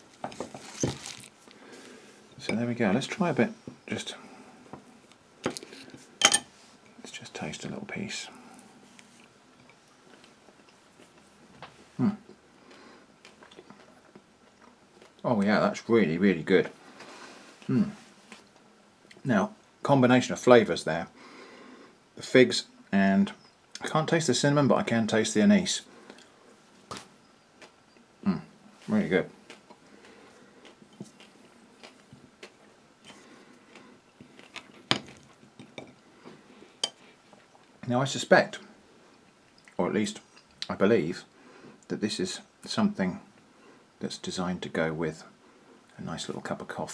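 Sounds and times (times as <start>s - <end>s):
faint chewing of cake: 8.3s - 15.3s, 27.5s - 37.8s
person humming mm: 17.6s - 18.0s.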